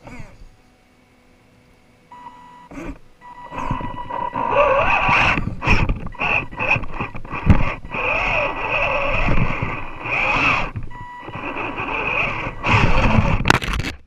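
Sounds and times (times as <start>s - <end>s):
toy car motor whining: 2.7s - 13.5s
wheels scraping on rock: 3.5s - 14.0s.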